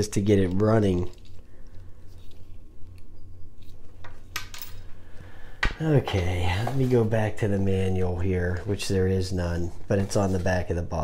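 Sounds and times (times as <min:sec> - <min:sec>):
plastic packaging rustling: 0:00.0 - 0:04.0
low steady hum: 0:00.0 - 0:11.0.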